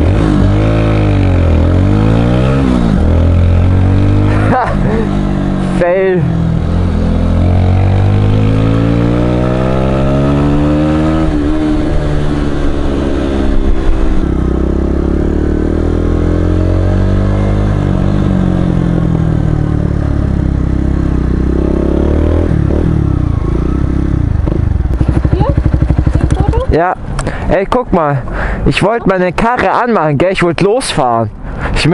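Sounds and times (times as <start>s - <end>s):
motorcycle engine revving through gears: 0.0s - 27.2s
motorcycle engine idling: 24.3s - 27.2s.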